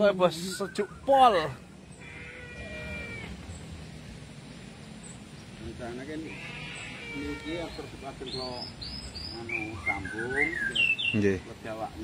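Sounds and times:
faint animal call: 1.9 - 3.7, 5.8 - 8.6.

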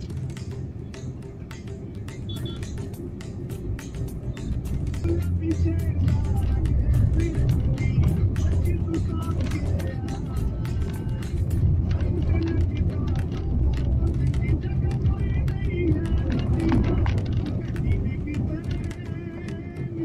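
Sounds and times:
car tyres rumbling on rough road: 0.0 - 20.0
music with a voice: 0.0 - 20.0
knocks and rattles: 3.6 - 19.9.

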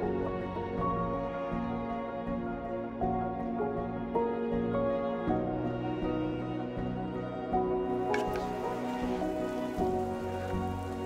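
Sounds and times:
slow background music: 0.0 - 11.0
clams sizzling in oil: 8.0 - 11.0
wooden spatula stirring in pan: 8.1 - 11.0.

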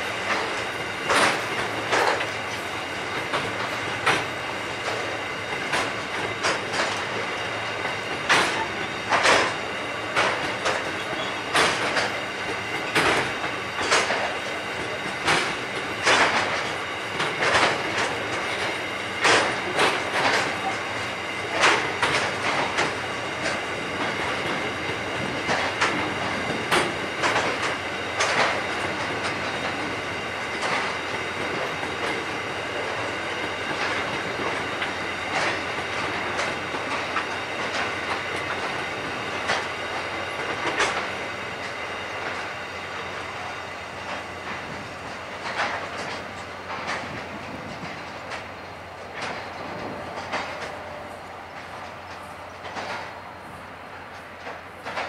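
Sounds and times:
train rolling rumble: 0.0 - 55.0
train wheels clicking over rail joints: 0.0 - 55.0.

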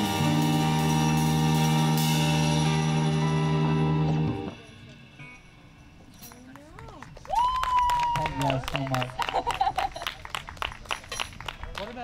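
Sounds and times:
jazz band sustained chord: 0.0 - 6.1.

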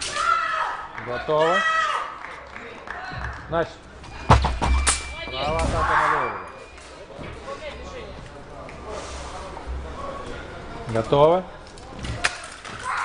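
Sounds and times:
low hall noise: 0.0 - 13.0.

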